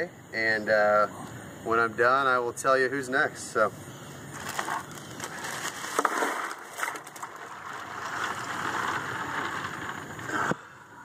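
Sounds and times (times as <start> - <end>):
ice water sloshing: 4.4 - 10.1.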